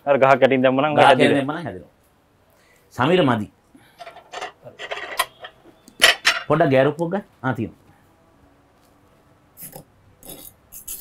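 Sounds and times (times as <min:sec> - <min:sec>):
dishes and utensils clinking: 0:04.0 - 0:06.6.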